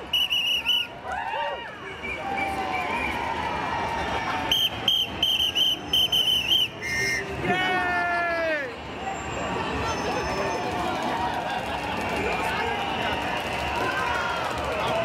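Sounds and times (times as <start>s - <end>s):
people whooping and shouting: 0.0s - 8.8s, 10.1s - 15.0s
crowd hubbub: 0.0s - 15.0s
shrill whistle toots: 0.1s - 0.9s, 4.5s - 7.4s.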